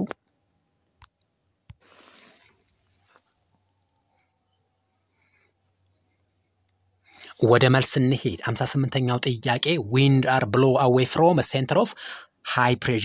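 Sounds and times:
faint sharp clicks: 1.0 - 1.8
short soft hiss: 1.8 - 3.3.

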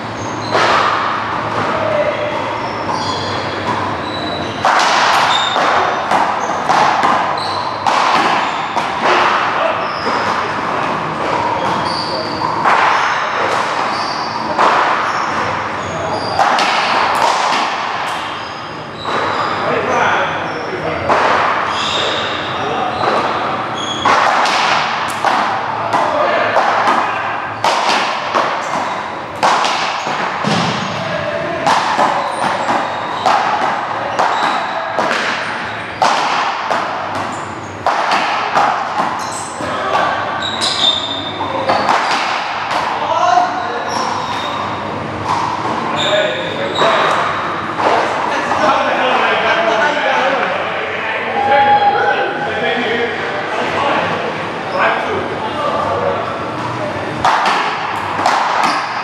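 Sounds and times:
rubber ball smacking paddles and walls: 31.6 - 41.0.

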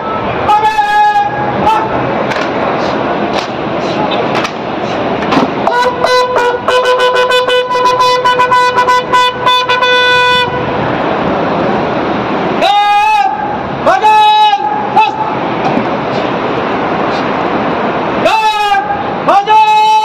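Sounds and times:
crowd murmuring: 1.3 - 6.7, 14.7 - 17.5
bugle call: 5.6 - 10.7.

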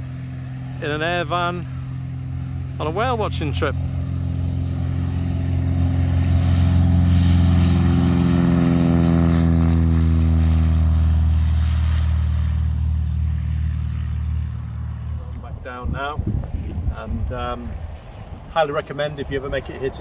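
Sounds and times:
propeller plane engine: 0.0 - 20.0.

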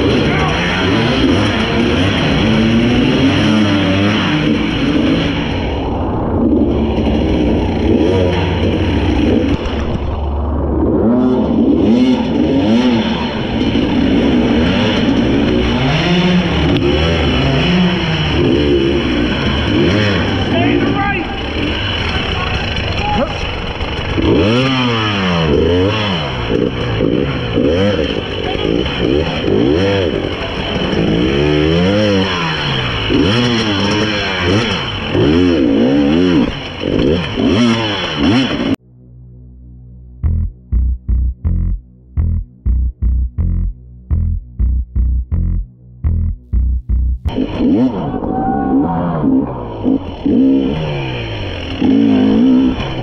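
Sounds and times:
dirt bike engine revving: 0.0 - 38.8, 40.2 - 53.0.

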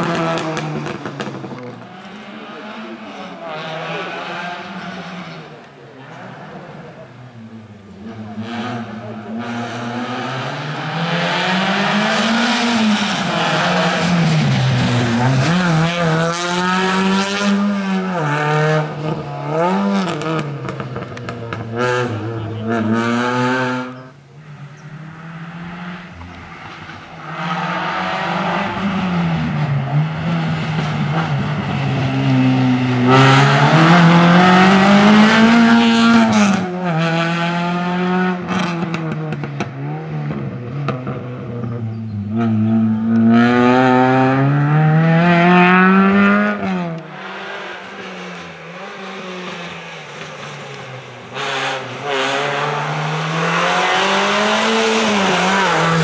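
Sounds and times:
race car engine revving: 0.0 - 56.0.

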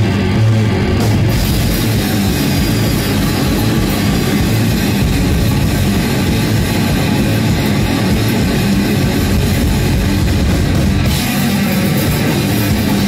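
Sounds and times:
drum kit with cymbals: 0.0 - 13.0
electric guitar strummed: 0.0 - 13.0.

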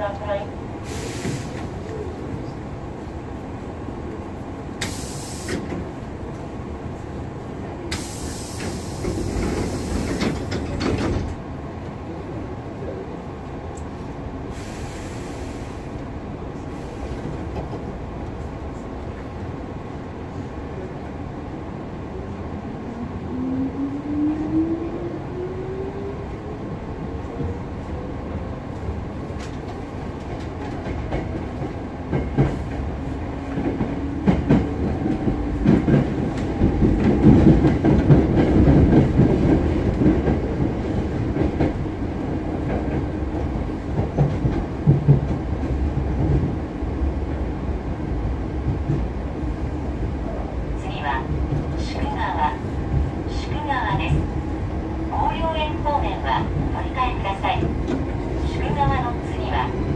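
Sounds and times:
train running gear rumble: 0.0 - 59.9.

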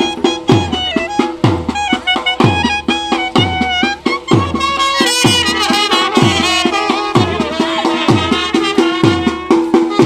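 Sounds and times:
clarinet and trumpets melody: 0.0 - 10.0
dhol drum strokes: 0.0 - 10.0.

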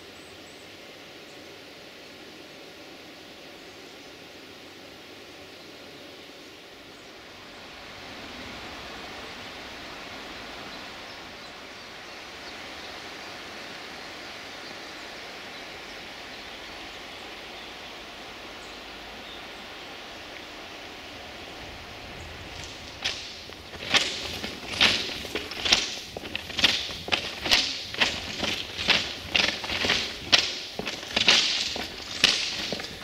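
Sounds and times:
outdoor rushing noise: 21.5 - 33.0.

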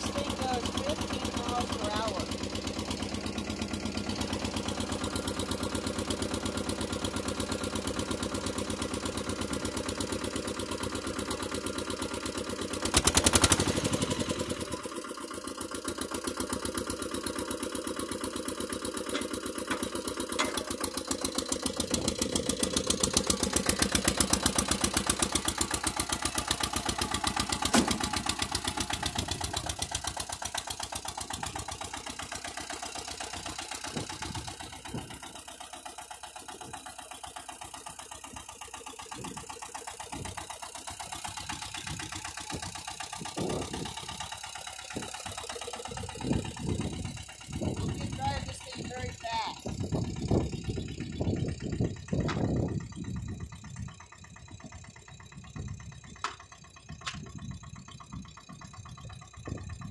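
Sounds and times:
tractor engine chugging: 0.0 - 59.9
loud clunk: 27.7 - 28.0.

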